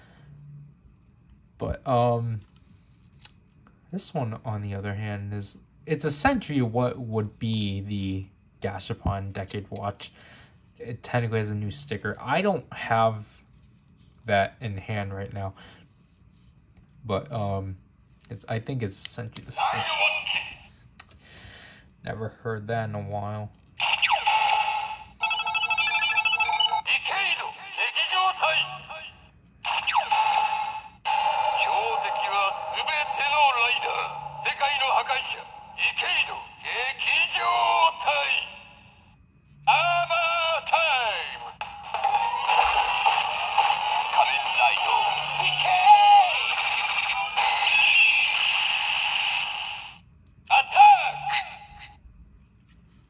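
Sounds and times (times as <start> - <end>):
toy voice calls: 19.6 - 20.7, 23.8 - 38.8, 39.7 - 52.0.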